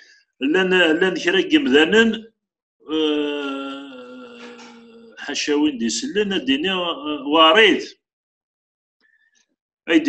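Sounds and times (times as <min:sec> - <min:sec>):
man holding long vowel: 0:02.9 - 0:05.3.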